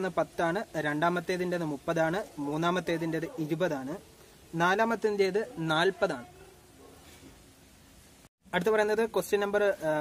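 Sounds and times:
man talking: 0.0s - 6.4s, 8.5s - 10.0s.

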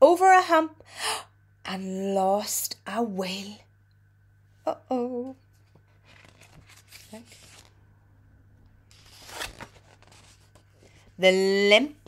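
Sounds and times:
book page turning: 5.6s - 7.8s, 8.9s - 11.2s.

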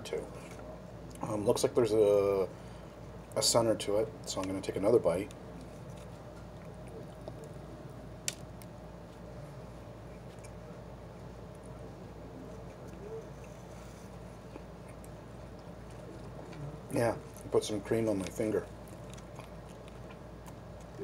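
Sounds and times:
low room hum: 0.0s - 21.0s
man chewing: 5.3s - 17.6s, 18.2s - 21.0s.

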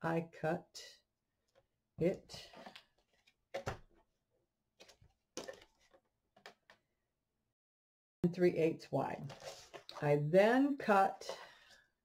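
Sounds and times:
paper rustling: 9.2s - 10.0s.

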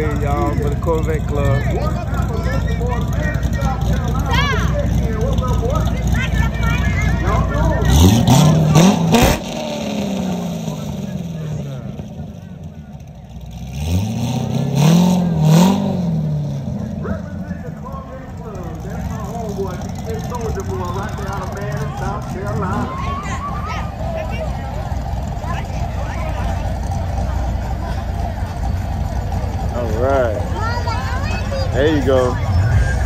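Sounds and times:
sports car engines revving: 0.0s - 33.0s.

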